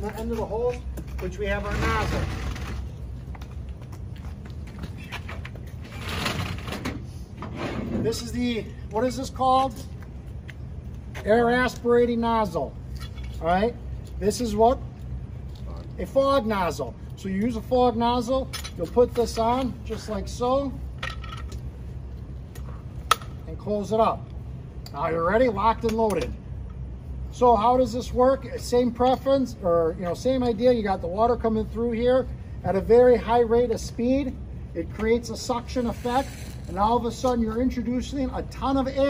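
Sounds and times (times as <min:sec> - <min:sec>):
equipment clattering and rustling: 0:00.0 - 0:08.3
low steady rumble: 0:00.0 - 0:39.0.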